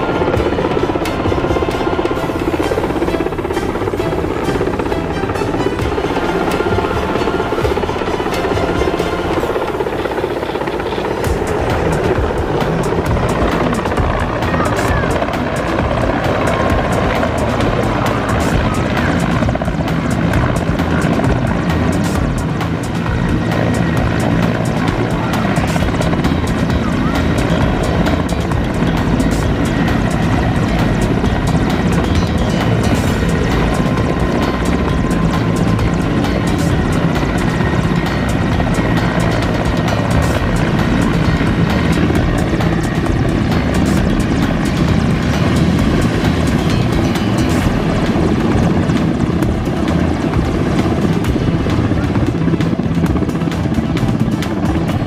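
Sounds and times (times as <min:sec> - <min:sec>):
helicopter hovering low: 0:00.0 - 0:55.0.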